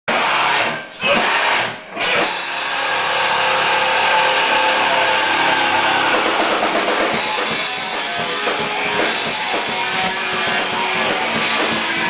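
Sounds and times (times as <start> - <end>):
distorted electric guitars and bass chord: 0.1 - 12.0.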